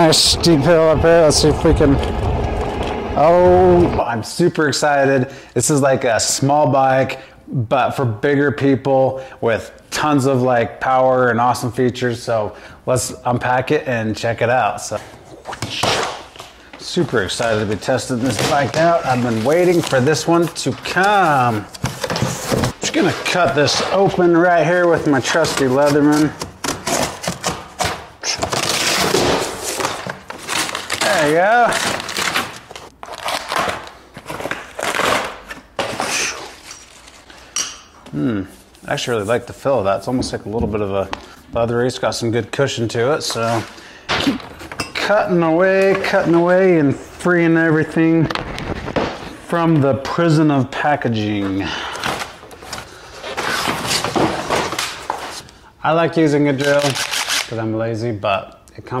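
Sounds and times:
plastic wrap rustling: 0:15.4 - 0:37.5, 0:51.2 - 0:55.6, 0:56.4 - 0:57.6
cardboard ripping: 0:15.5 - 0:24.2, 0:24.8 - 0:37.3, 0:56.6 - 0:57.5.

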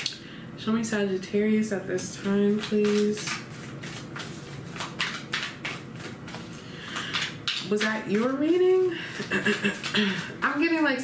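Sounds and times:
cards being shuffled: 0:02.2 - 0:08.6, 0:09.5 - 0:10.0.

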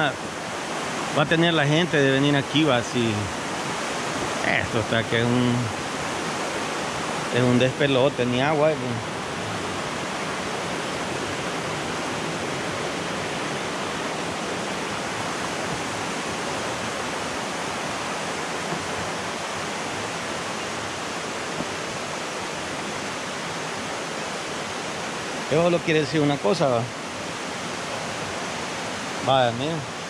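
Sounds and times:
river water flowing over rocks: 0:00.0 - 0:30.0.

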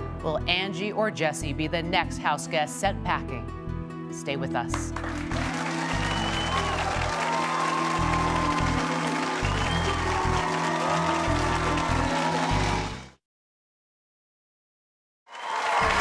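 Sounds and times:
audience applauding: 0:04.9 - 0:13.2, 0:15.3 - 0:16.0.

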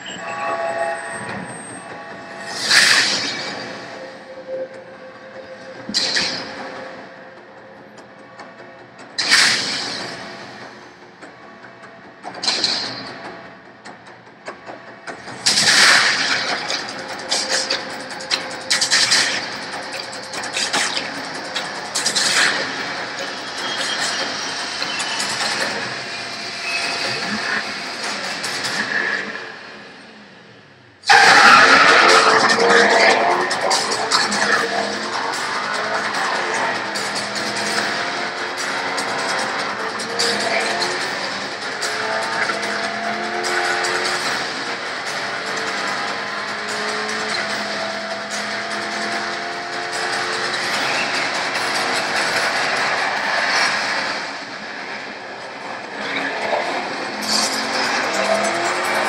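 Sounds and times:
music: 0:02.2 - 0:28.9
car engine accelerating hard: 0:15.1 - 0:29.6, 0:31.0 - 0:59.0.

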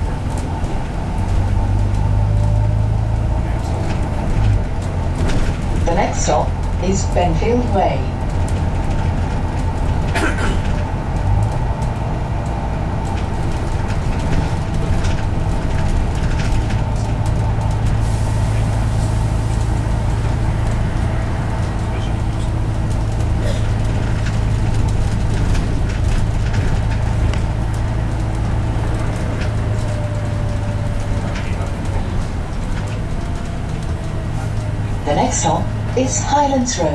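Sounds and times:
bodywork rattles: 0:00.0 - 0:06.8, 0:07.4 - 0:18.0, 0:18.7 - 0:36.9
bus engine drone: 0:00.0 - 0:36.9
road noise: 0:00.0 - 0:36.9.

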